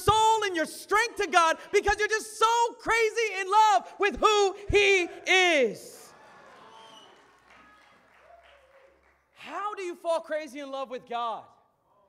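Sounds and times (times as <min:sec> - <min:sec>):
man's voice echoing: 0:00.0 - 0:06.1, 0:09.4 - 0:11.9.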